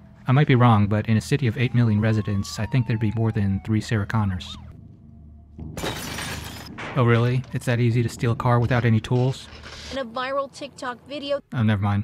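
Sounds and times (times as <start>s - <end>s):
car window glass shattering: 5.6s - 7.0s.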